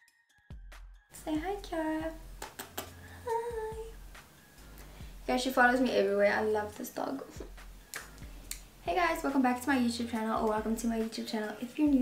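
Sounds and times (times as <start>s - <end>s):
woman humming: 3.1s - 4.0s.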